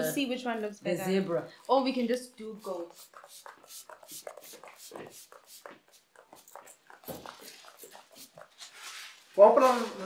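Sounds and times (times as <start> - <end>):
spray bottle spritzes: 2.6 - 8.4.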